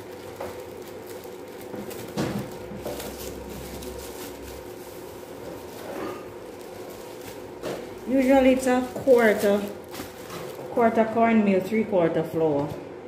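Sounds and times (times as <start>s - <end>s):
plastic bag rustling: 0.0s - 12.9s.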